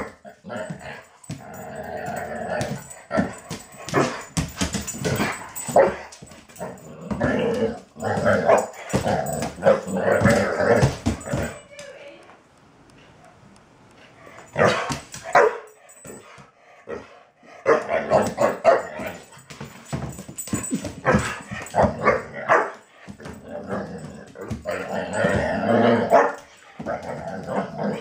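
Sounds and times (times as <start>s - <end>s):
young dog barking: 14.6s - 15.7s.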